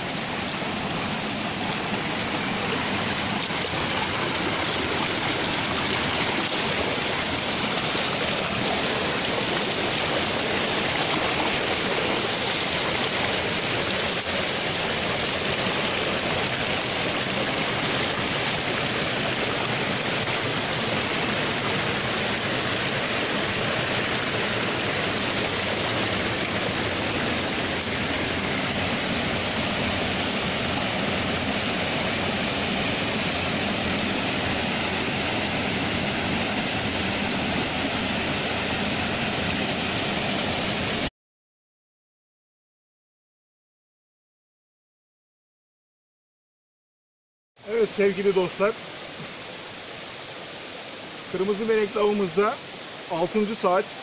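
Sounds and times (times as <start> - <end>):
waterfall pouring into pool: 0.0 - 41.1.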